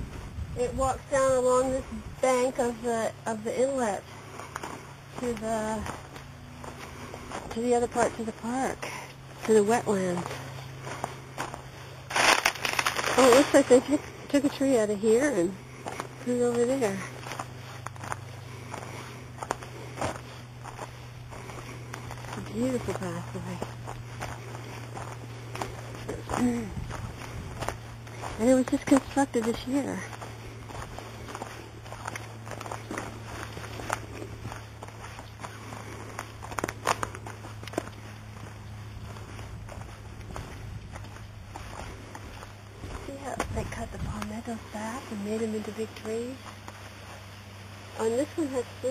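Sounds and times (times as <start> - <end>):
footsteps on leaves and dirt: 0.0 - 48.9
steady low hum: 0.0 - 48.9.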